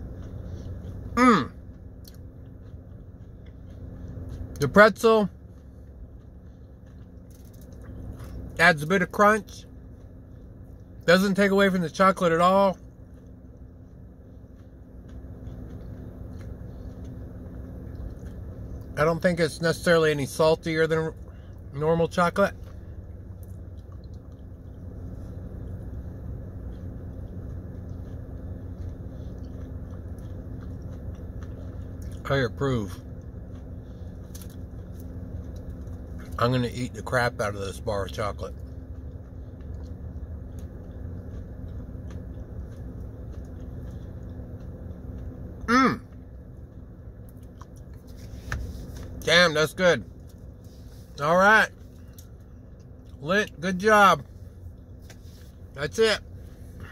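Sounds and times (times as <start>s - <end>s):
chewing chocolate: 0.0s - 11.1s, 12.7s - 19.3s, 22.5s - 37.0s, 37.8s - 49.2s
low hum inside a car: 0.0s - 56.9s.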